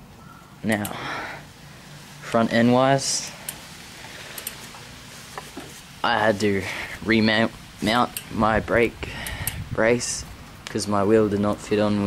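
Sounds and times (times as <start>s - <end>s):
low steady hiss: 0.0s - 12.0s
faint light clicks: 3.4s - 4.8s.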